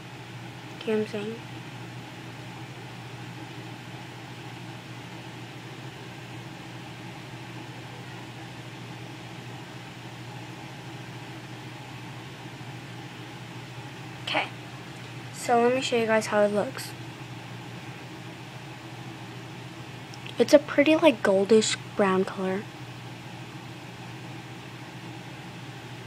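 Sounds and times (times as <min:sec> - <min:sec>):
low hum and hiss: 0:00.0 - 0:26.0.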